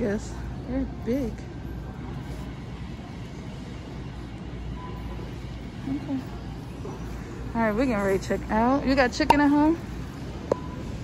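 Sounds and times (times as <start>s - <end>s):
store background rumble: 0.0s - 11.0s.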